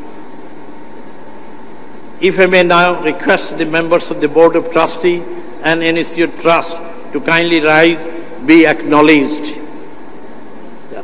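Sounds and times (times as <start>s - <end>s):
faint high whine: 0.0s - 11.0s
steady background hiss: 0.0s - 11.0s.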